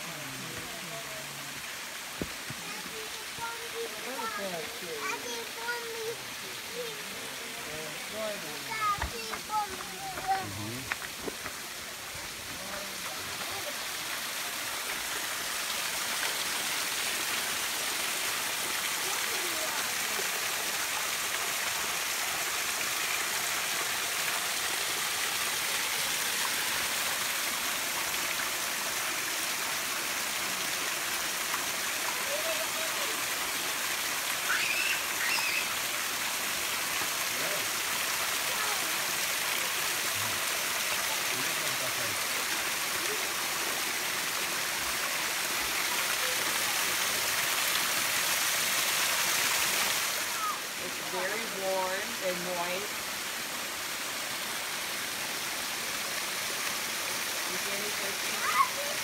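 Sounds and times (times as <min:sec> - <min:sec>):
waterfall rushing: 0:00.0 - 0:59.0.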